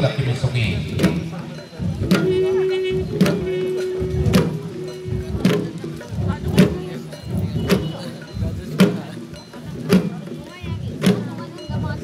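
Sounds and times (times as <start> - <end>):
drums beating dance rhythm: 0.0 - 12.0.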